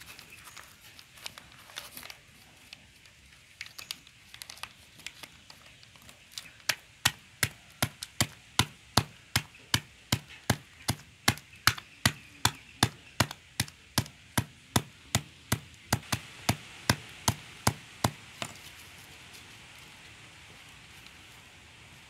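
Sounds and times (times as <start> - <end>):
hammer knocks crushing mothballs: 6.5 - 18.6.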